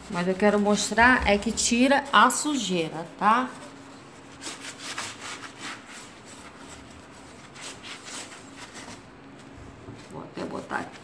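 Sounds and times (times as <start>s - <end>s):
sponge scrubbing window glass: 0.0s - 9.1s.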